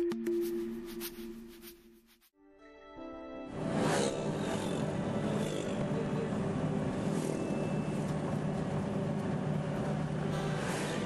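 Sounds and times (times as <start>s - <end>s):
road and tyre noise: 3.5s - 11.0s
car engine hum: 3.6s - 11.0s.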